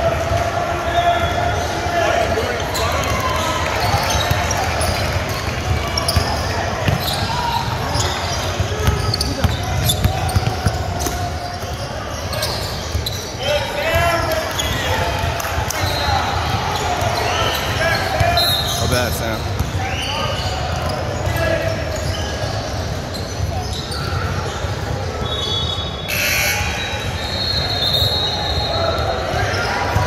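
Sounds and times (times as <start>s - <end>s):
sneaker squeaks: 0.9s - 15.1s, 15.7s - 30.0s.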